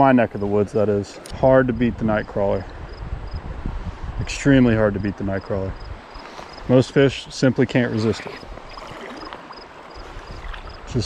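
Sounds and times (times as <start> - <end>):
light wind: 0.0 - 11.0
creek water flowing: 4.8 - 11.0.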